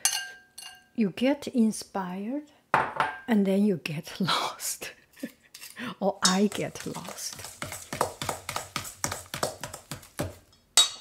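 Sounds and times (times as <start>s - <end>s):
utensil beating butter in bowl: 6.2s - 10.6s.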